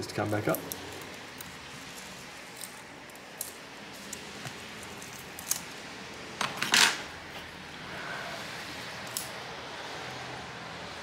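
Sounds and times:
faint clicks of small parts: 0:00.0 - 0:05.8, 0:09.0 - 0:09.4.

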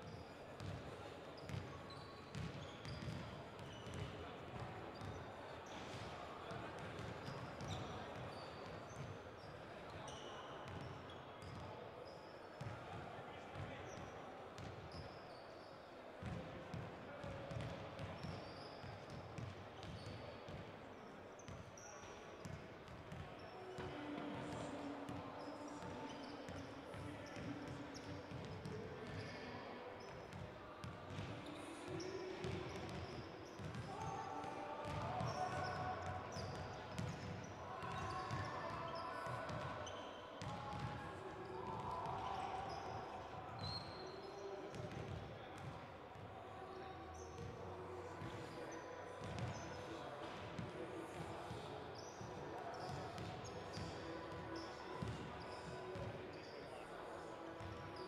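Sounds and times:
murmur of voices: 0:00.0 - 0:58.0
basketballs bouncing on hard court: 0:34.8 - 0:35.3.

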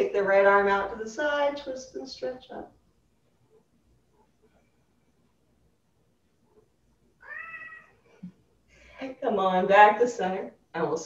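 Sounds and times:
cat meowing: 0:07.2 - 0:08.0.

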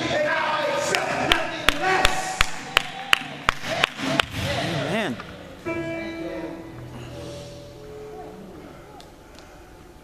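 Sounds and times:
person preaching: 0:04.8 - 0:05.2.

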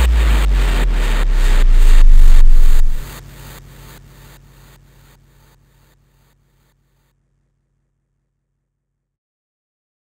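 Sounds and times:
deep sustained bass: 0:00.0 - 0:03.1
pulsing noise layer: 0:00.0 - 0:03.1.

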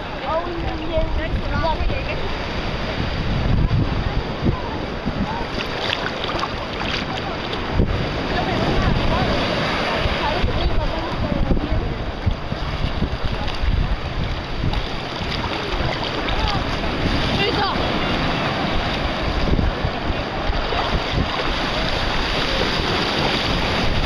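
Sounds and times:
small waves breaking in shallow surf: 0:00.0 - 0:24.0
wind buffeting microphone: 0:00.0 - 0:24.0.

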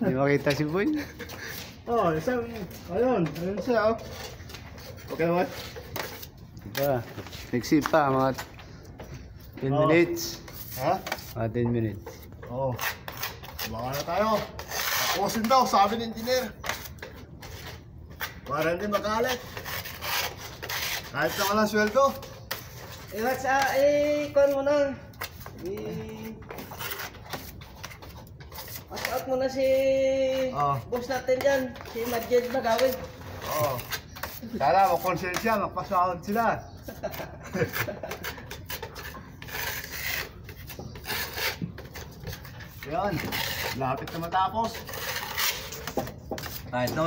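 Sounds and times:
putty knife scraping plaster wall: 0:10.2 - 0:11.4, 0:12.0 - 0:47.0.

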